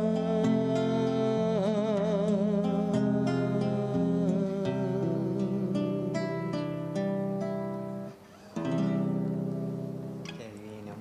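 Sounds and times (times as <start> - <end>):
classical guitar playing: 0.0 - 11.0.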